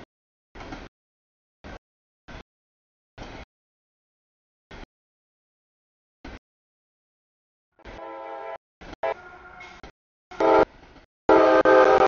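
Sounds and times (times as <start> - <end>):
locomotive air horn blasts: 7.8 - 10.7, 11.3 - 12.0.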